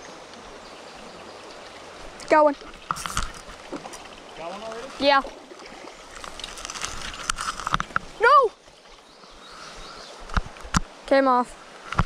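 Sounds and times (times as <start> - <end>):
leaves brushing microphone: 1.7 - 8.4.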